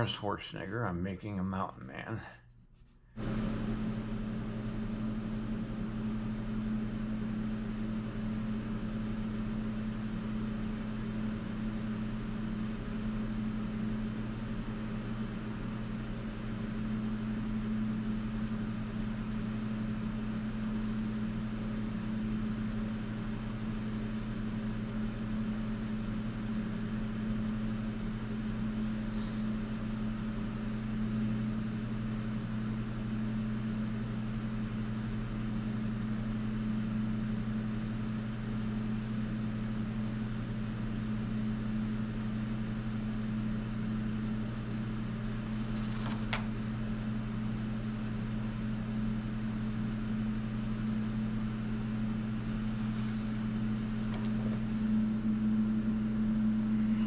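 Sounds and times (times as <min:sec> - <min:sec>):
low electrical hum: 0:00.0 - 0:57.0.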